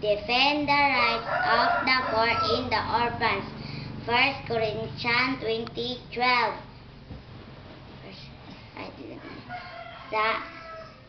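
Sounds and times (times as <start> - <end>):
rooster crowing: 1.0 - 2.8, 9.2 - 11.0.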